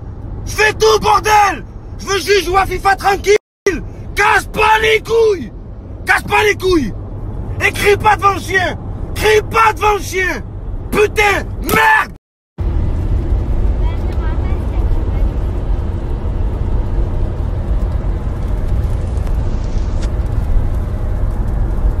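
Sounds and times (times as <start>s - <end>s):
man shouting: 0.5s - 6.9s, 7.6s - 12.2s.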